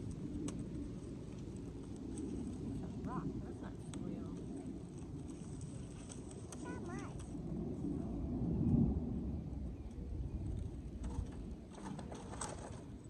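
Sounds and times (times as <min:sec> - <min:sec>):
low uneven rumble: 0:00.0 - 0:13.0
small child's high-pitched vocal sounds: 0:06.6 - 0:07.2.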